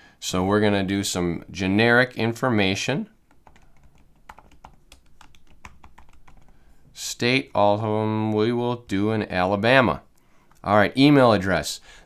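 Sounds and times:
computer keyboard typing: 3.3 - 6.6.

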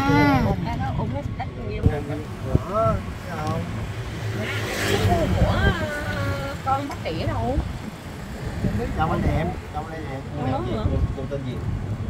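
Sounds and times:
voices calling out: 0.0 - 10.9
wind and road noise rumble: 0.0 - 12.0.

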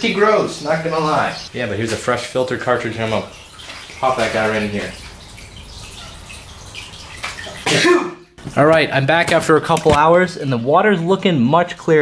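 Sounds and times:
aquarium filter water splashing: 0.0 - 10.3.

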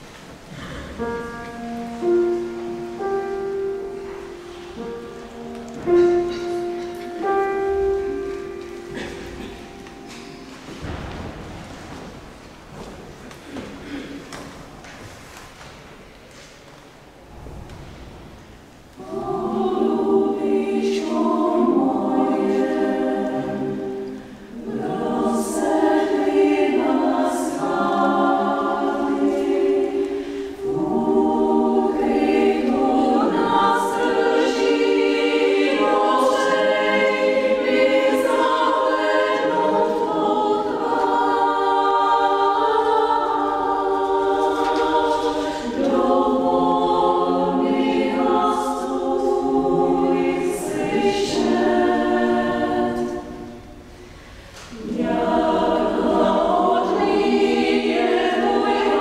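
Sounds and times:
women's choir singing a cappella: 0.6 - 11.4, 18.8 - 59.0.

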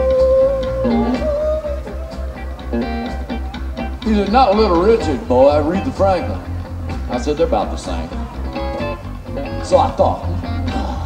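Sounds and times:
blues guitar playing: 0.0 - 11.0
low bass pulse: 0.0 - 11.0.

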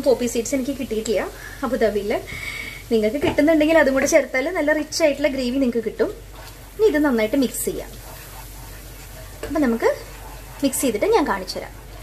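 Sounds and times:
food sizzling in a pan: 0.0 - 12.0
spoon stirring paste: 3.9 - 12.0.

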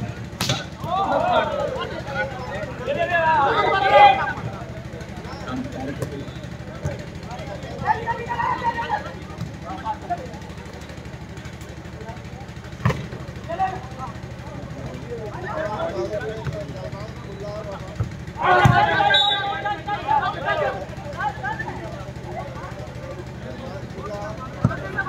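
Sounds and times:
players and spectators shouting: 0.0 - 25.0
volleyball being hit: 0.3 - 1.0.

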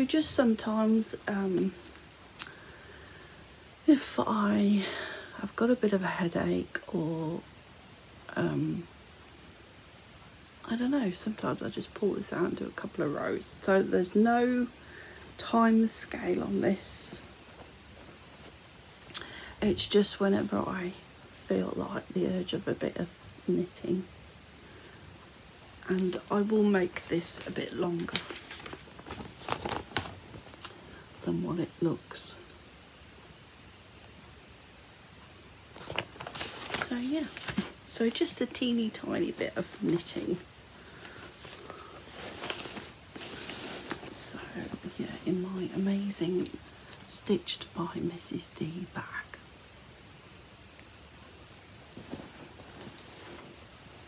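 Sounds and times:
soft rustling of knitting: 0.0 - 2.9, 10.2 - 54.0
fabric bag rustling: 15.4 - 18.7, 25.9 - 30.7, 35.7 - 45.8, 46.4 - 47.2, 51.2 - 54.0.

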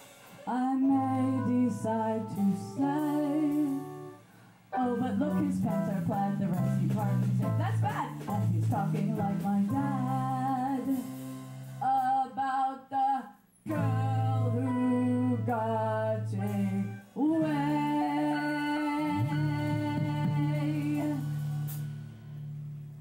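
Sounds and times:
band playing: 0.0 - 11.8, 13.7 - 22.5
woman singing into a microphone: 0.5 - 11.2, 11.8 - 21.5.

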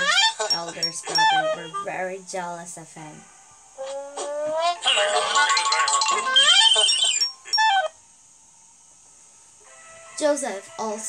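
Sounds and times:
cartoon music: 0.0 - 1.9, 3.8 - 8.0
low room hiss: 0.0 - 11.0.

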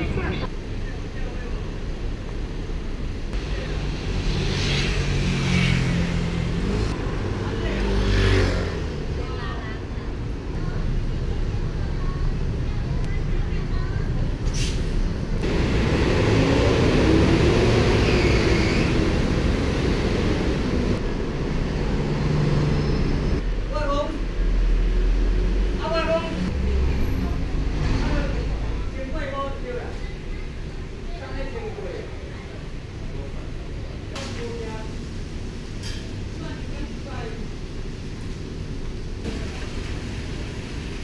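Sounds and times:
people talking: 0.0 - 1.8, 9.2 - 14.4, 36.4 - 37.5
cars passing: 3.3 - 11.9, 15.0 - 41.0.

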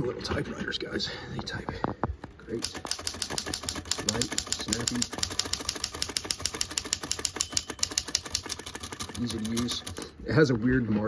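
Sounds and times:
rapid typewriter typing: 2.5 - 10.2.

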